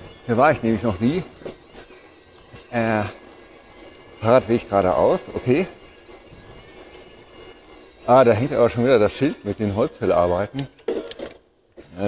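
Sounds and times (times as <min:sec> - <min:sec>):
faint high whine: 0:00.0 - 0:10.5.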